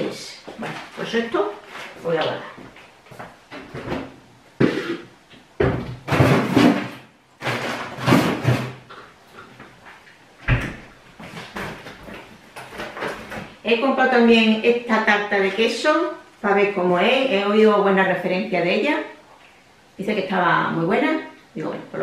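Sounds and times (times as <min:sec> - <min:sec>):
cupboard doors opening and shutting: 0:05.6 - 0:08.9, 0:10.4 - 0:13.6.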